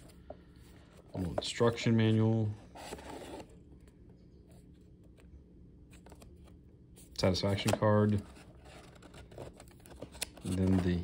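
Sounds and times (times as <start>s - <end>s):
paper rustle: 7.2s - 11.0s.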